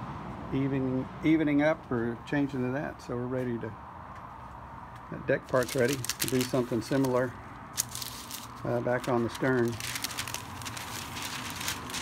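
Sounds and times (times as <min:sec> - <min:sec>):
wax paper rustling and crackling: 0:05.4 - 0:12.0.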